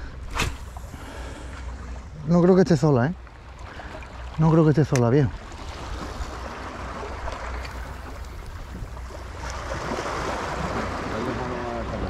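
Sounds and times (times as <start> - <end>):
sea water lapping: 0.0 - 12.0
wind rumbling on microphone: 5.3 - 12.0.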